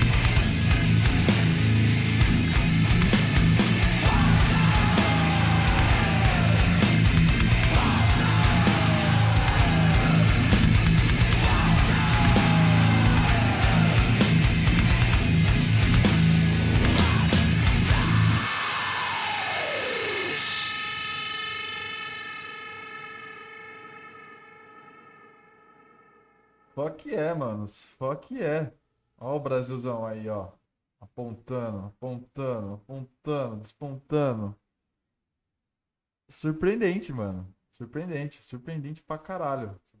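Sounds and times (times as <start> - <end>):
heavy metal band playing: 0.0 - 23.6
held distorted guitar chord: 0.0 - 26.7.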